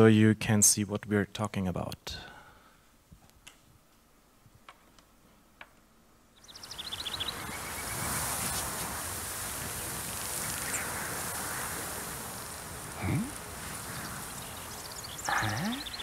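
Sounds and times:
airy meadow ambience hiss: 0.0 - 16.0
high bird chirps: 6.4 - 8.1, 13.9 - 16.0.

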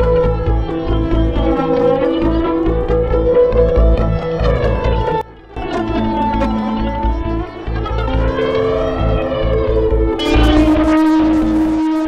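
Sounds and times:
electric guitar tones: 0.0 - 12.0
siren-like synth sweep: 0.0 - 12.0
sustained synthesizer tones: 0.0 - 12.0.

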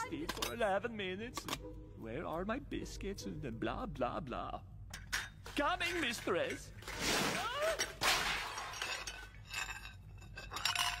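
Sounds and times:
pot lid clinking and rattling: 8.8 - 11.0.

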